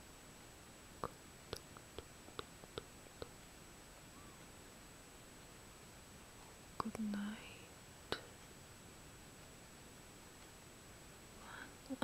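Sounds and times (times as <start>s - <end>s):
soft mouth clicks: 1.0s - 3.4s.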